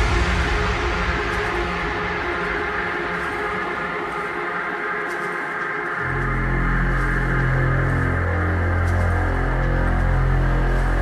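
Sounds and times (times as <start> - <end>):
bass: 0.0 - 3.4, 6.0 - 11.0
droning synth chords: 0.0 - 11.0.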